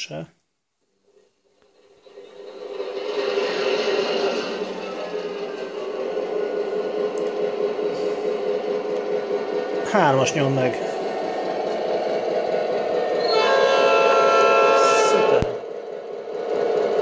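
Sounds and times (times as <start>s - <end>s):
model locomotive motor whirring: 1.5s - 17.0s.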